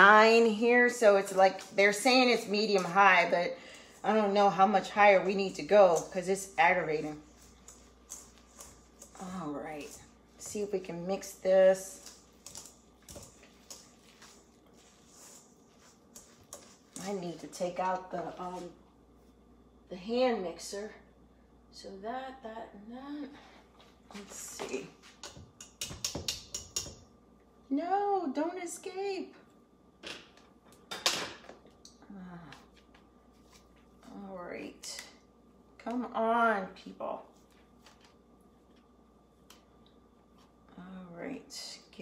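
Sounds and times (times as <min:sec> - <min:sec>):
whisk clicking against metal bowl: 0:25.6 - 0:27.0.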